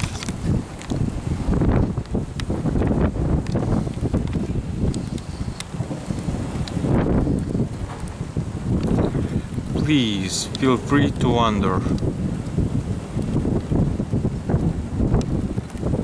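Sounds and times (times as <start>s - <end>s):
gusty wind on microphone: 0.0s - 16.0s.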